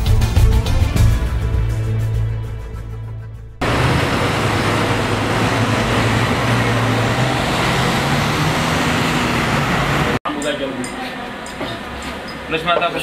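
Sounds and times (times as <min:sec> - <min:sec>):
street traffic rumble: 0:02.8 - 0:13.0.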